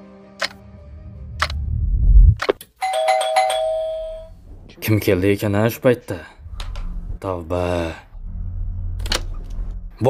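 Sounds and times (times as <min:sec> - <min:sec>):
low rumble: 0:00.6 - 0:02.6, 0:04.1 - 0:10.0
doorbell ding-dong chime: 0:02.8 - 0:04.4.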